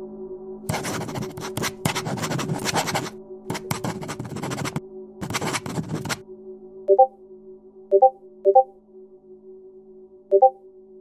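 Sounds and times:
soft background music: 0:00.0 - 0:11.0
pen scratching on paper: 0:00.7 - 0:06.2.

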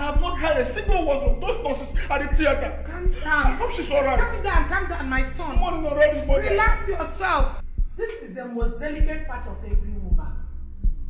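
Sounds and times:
low heartbeat-like pulse: 0:00.0 - 0:11.0.

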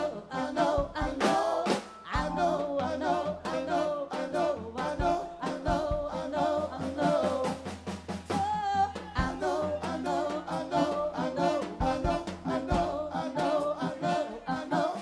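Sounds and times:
person singing: 0:00.0 - 0:07.5
jazz-funk band music: 0:00.0 - 0:15.0.

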